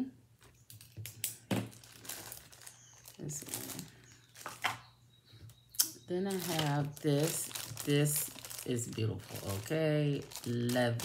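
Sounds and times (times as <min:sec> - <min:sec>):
plastic bag crinkling: 0:00.7 - 0:04.8, 0:06.2 - 0:11.0.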